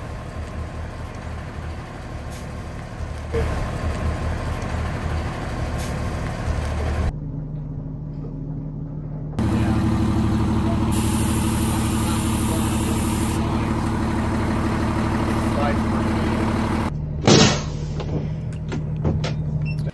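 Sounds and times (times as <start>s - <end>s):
motorhome engine rumbling: 0.0s - 19.9s.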